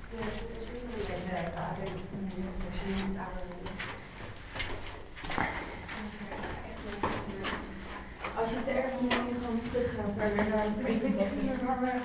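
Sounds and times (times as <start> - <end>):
people talking: 0.0 - 3.8, 5.4 - 7.8, 8.4 - 12.0
footsteps on rock floor: 0.1 - 12.0.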